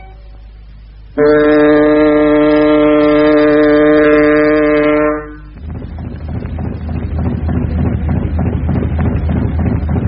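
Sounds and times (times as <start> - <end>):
loud low horn blast: 1.2 - 5.7.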